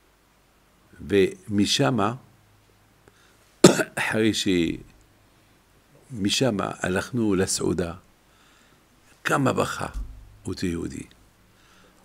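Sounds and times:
man coughing: 3.6s - 4.1s.

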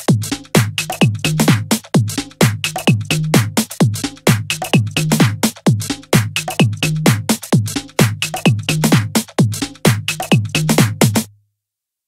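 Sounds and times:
tech house drum machine beat: 0.0s - 11.3s.

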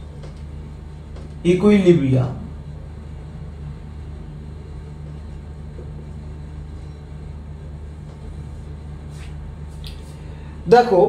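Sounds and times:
steady low electrical hum: 0.0s - 11.0s.

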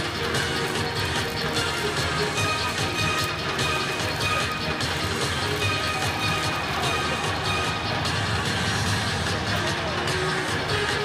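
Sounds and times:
music with regular beat: 0.0s - 11.0s
stadium crowd noise: 0.0s - 11.0s.

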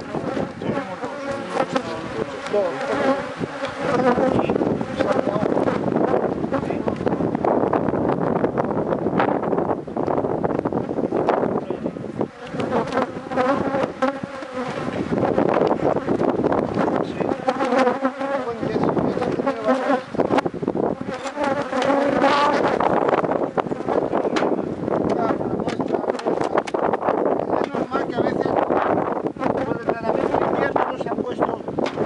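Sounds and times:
honeybees buzzing: 0.0s - 32.0s.

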